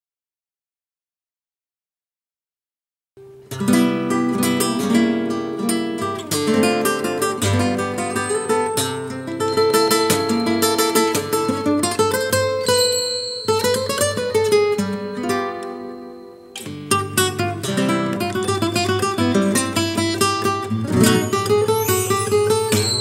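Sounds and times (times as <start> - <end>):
fingerpicked classical guitar: 3.2 - 12.8, 13.5 - 23.0.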